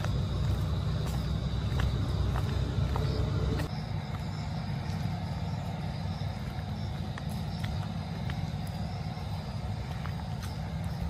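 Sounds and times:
footsteps on paved path: 0.0s - 11.0s
low outdoor rumble: 0.0s - 11.0s.

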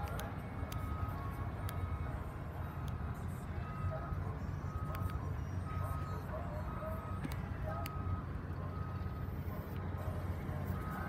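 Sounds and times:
steady low rumble: 0.0s - 11.0s
car warning chime: 0.1s - 9.4s.

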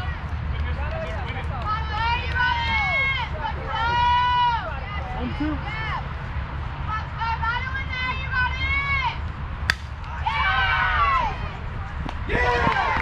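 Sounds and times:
bat hitting ball: 9.6s - 10.2s.

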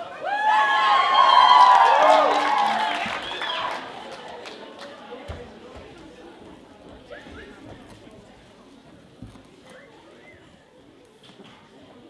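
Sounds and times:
audience murmuring: 2.6s - 12.0s.

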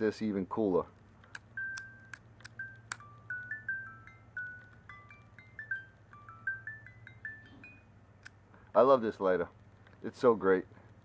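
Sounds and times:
music box tune: 1.4s - 8.3s.

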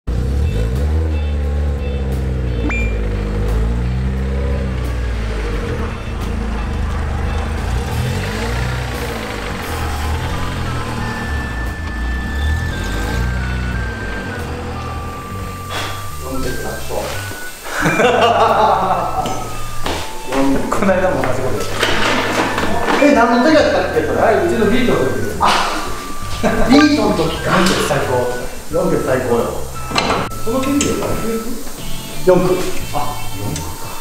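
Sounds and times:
car engine revving: 0.0s - 34.0s
background music: 0.1s - 34.0s.

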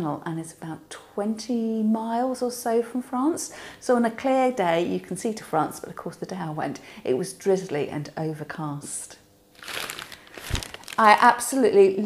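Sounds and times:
paper wrapping crinkling: 9.6s - 11.3s.

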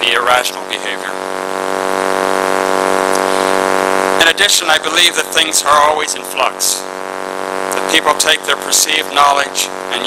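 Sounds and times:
loud steady buzzing hum: 0.0s - 10.0s
person speaking: 7.7s - 10.0s.

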